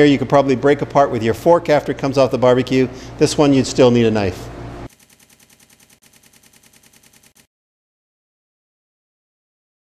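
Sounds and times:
rapid electronic pulsing: 4.9 - 7.5.

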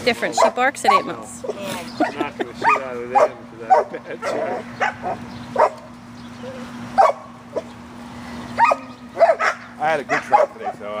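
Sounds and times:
dog barking: 0.3 - 5.9, 7.0 - 7.7, 8.6 - 10.9.

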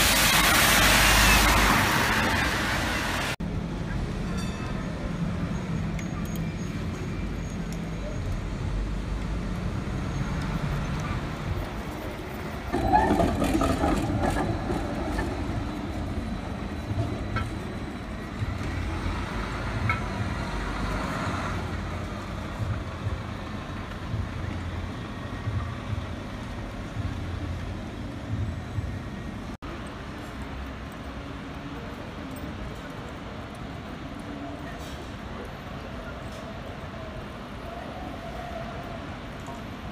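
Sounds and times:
city traffic: 0.0 - 39.9.

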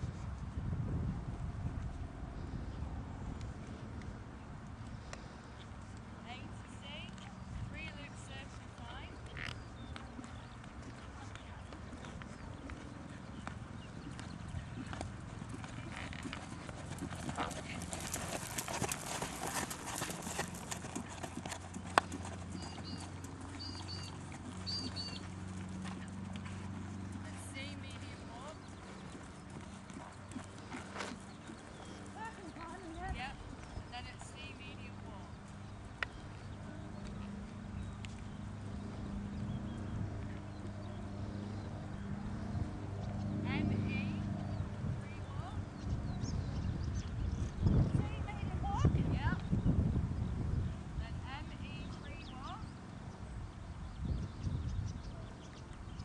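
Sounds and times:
horse hoofbeats on sand: 9.3 - 35.0.

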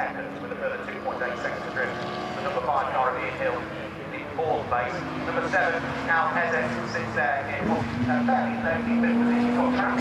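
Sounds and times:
man commentating over loudspeakers: 0.0 - 10.0
race car engine: 0.0 - 10.0.

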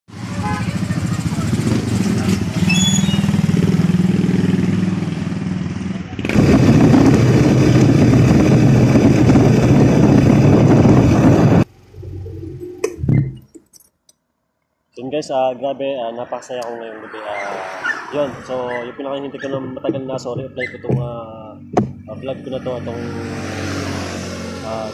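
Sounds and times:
motorcycle engine running: 0.1 - 13.6, 19.5 - 24.9
wind and road noise: 0.1 - 13.9, 15.0 - 24.9
knocks: 19.8 - 22.1.

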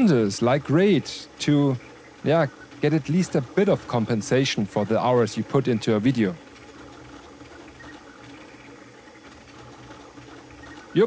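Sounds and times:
cooling fans rushing: 0.0 - 11.0
printer toolhead mechanical hum: 0.0 - 11.0.

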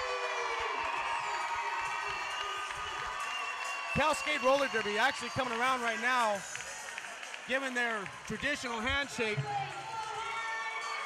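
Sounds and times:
crowd cheering and whooping: 0.0 - 11.0.

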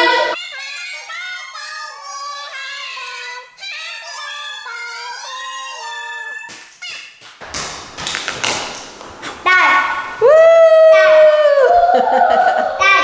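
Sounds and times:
high-pitched held shouts: 9.4 - 13.0.

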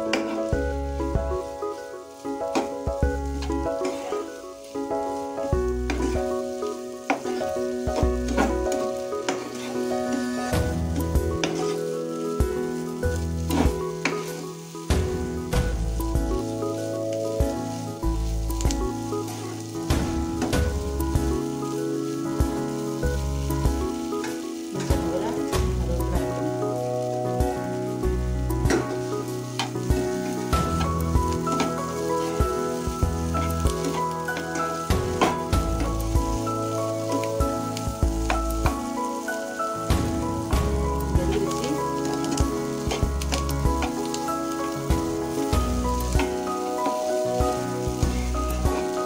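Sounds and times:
potatoes sizzling in oil: 0.0 - 49.0
spatula scraping and knocking pan: 7.0 - 11.9, 28.6 - 36.4
background music with bass line: 10.1 - 11.8, 12.4 - 14.1, 14.9 - 16.8, 17.4 - 21.6, 22.4 - 24.1, 27.4 - 39.0, 39.8 - 46.6, 47.3 - 49.0.

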